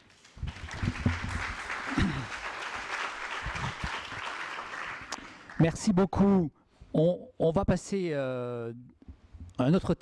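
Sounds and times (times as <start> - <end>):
audience applauding: 0.0 - 5.8.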